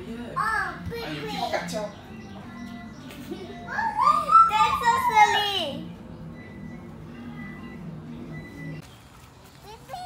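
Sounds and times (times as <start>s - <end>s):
background music: 0.0s - 8.8s
toddler squealing: 3.7s - 5.6s.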